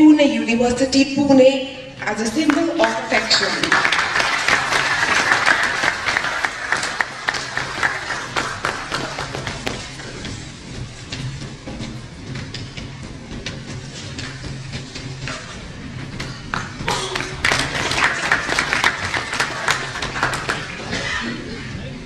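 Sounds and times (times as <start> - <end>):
audience applause: 2.3 - 10.0, 16.5 - 21.2.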